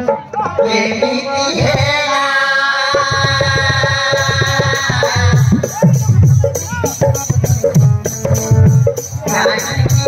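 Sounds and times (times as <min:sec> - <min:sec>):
hand drum beating a lively rhythm: 0:02.9 - 0:10.0.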